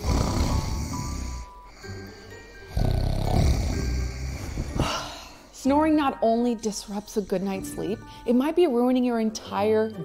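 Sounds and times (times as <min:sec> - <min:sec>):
person snoring loudly: 0:00.0 - 0:05.2
soft background music: 0:00.0 - 0:10.0.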